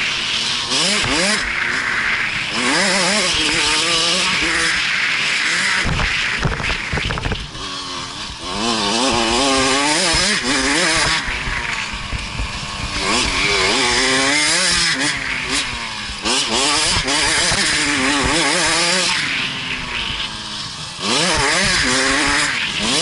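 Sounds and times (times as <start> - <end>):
two-stroke motorcycle engine revving: 0.0 - 23.0.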